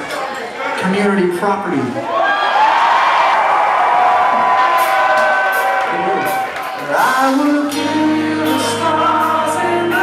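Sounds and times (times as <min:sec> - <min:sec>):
crowd cheering and screaming: 0:02.0 - 0:07.4.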